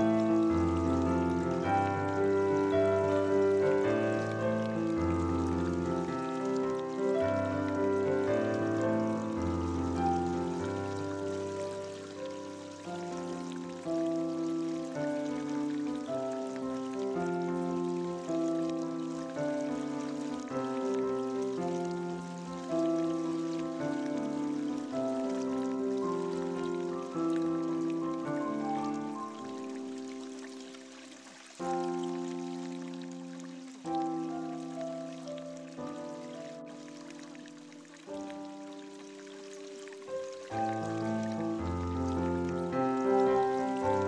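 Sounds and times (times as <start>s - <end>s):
running water hiss: 0.0s - 44.0s
slow solo piano: 0.0s - 44.0s.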